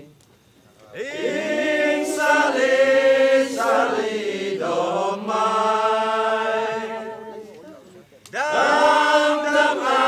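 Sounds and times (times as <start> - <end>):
vocal chanting: 1.0 - 10.0.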